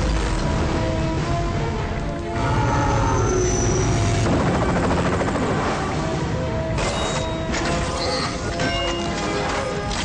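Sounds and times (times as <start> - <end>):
dramatic music: 0.0 - 10.0.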